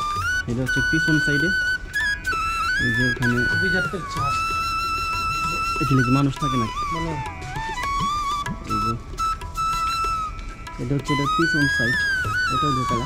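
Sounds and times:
gliding melody of held notes: 0.0 - 13.0
voice: 0.5 - 1.6, 2.8 - 4.4, 5.4 - 7.8, 8.5 - 9.0, 10.8 - 13.0.

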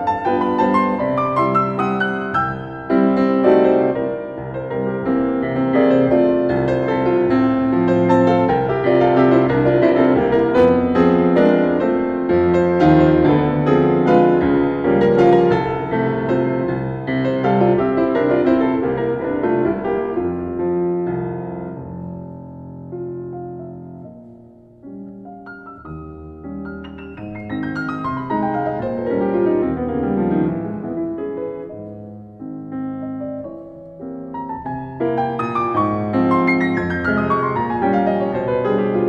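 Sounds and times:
piano playing a waltz: 0.0 - 39.0.

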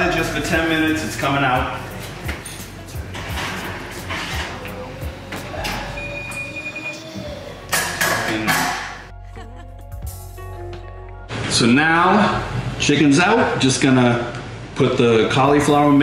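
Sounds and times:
oven door and rack opening: 2.1 - 6.0
background music with beat: 9.1 - 11.3.

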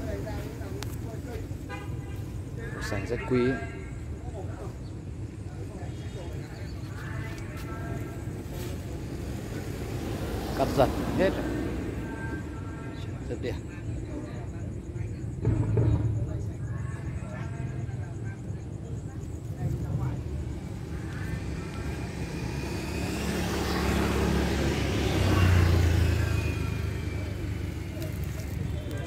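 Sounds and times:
faint voices: 0.0 - 29.0
motor vehicle passing by: 8.6 - 12.6, 19.6 - 29.0.

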